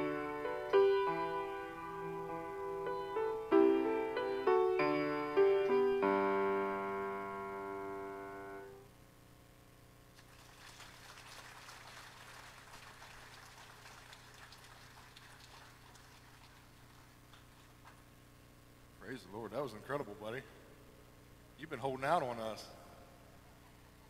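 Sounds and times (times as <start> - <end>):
grand piano chord: 0.0 - 8.9
faint scattered applause: 10.1 - 18.0.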